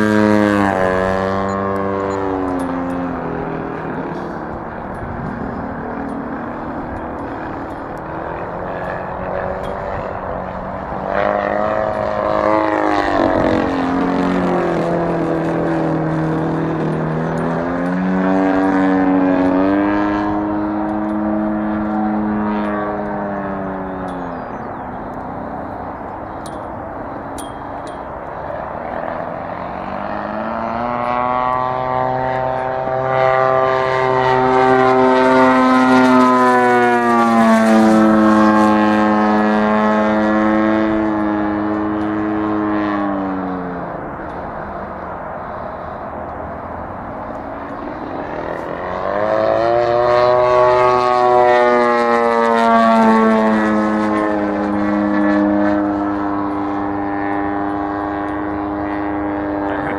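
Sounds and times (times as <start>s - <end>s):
model plane engine whine: 0.0s - 59.9s.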